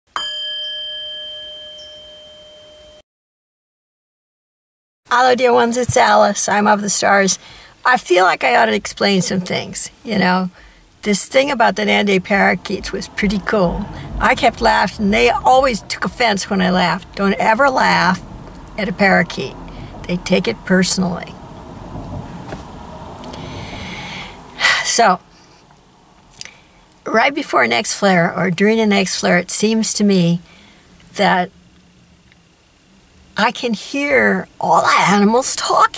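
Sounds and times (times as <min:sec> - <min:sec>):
struck bell-like chime: 0:00.1 - 0:03.0
soft hiss: 0:05.4 - 0:27.1, 0:28.8 - 0:35.9
car cabin low rumble: 0:08.2 - 0:24.6.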